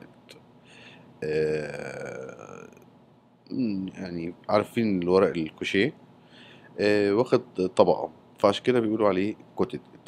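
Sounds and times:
man's hesitation sound: 0:01.2 - 0:02.9.

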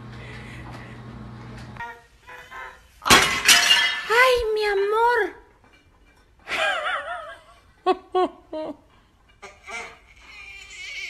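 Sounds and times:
glass shattering: 0:03.0 - 0:04.3
clattering: 0:03.1 - 0:04.4.

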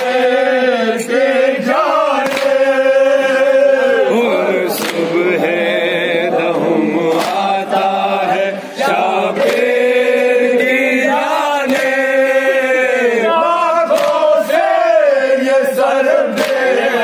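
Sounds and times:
men chanting a lament: 0:00.0 - 0:17.0.

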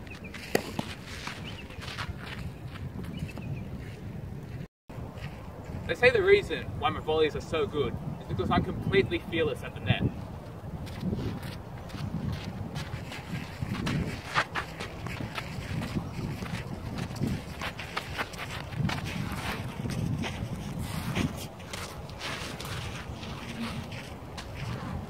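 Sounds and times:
wind noise on microphone: 0:00.0 - 0:25.0
footsteps knocking and scuffing on clay: 0:10.8 - 0:25.0.

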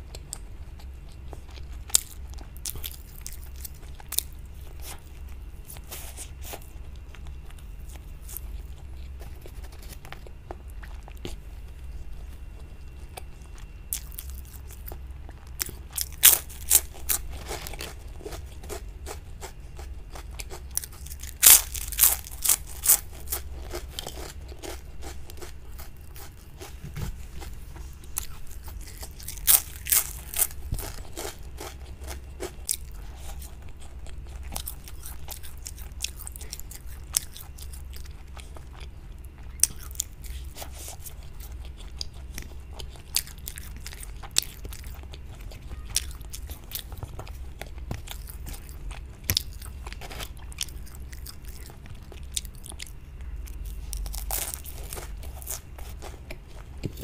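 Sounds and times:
crisp chip crunching: 0:00.1 - 0:26.7, 0:27.4 - 0:57.0.

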